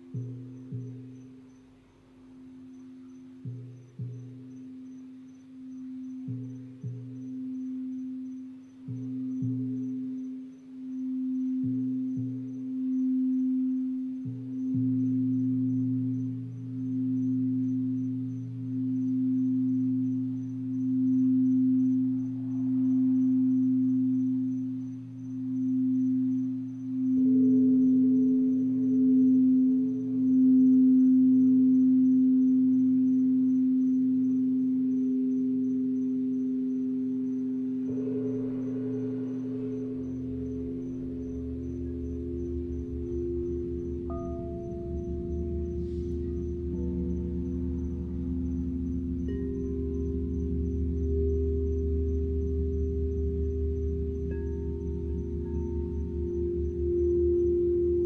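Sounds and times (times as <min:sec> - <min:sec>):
crystal singing bowls ringing: 0:00.0 - 0:58.0
low gong rumble: 0:37.8 - 0:58.0.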